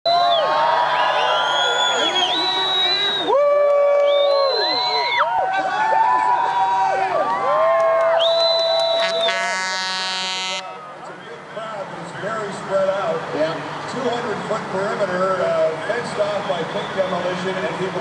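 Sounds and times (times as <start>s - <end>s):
crowd cheering and whooping: 0.1s - 9.8s.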